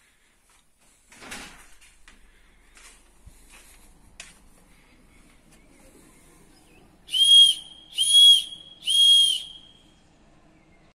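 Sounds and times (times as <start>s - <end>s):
whistle blasts: 7.1s - 9.8s.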